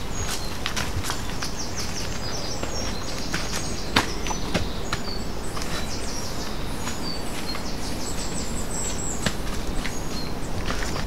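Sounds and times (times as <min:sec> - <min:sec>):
footsteps on dirt path: 0:00.0 - 0:11.0
small birds chirping: 0:00.0 - 0:11.0.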